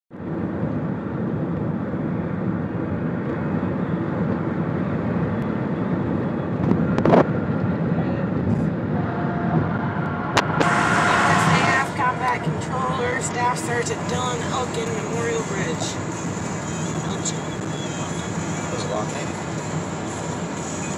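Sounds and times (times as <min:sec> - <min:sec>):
car road and engine noise: 0:00.1 - 0:20.9.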